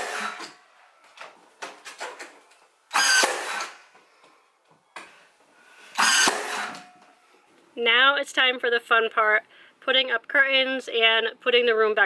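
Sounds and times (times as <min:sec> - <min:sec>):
nailer firing shot: 0:02.9 - 0:03.8, 0:06.0 - 0:07.0
nailer motor whine: 0:02.9 - 0:03.8, 0:06.0 - 0:07.0.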